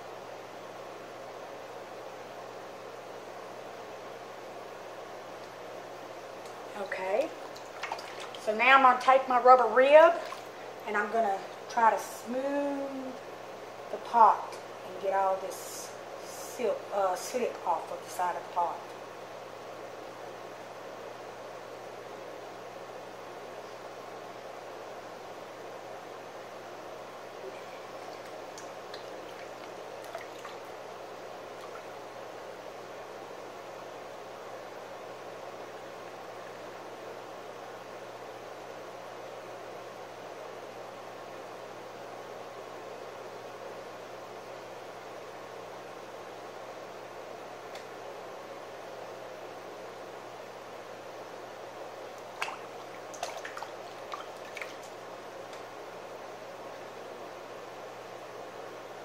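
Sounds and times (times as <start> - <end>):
potter's wheel humming: 0.0 - 59.0.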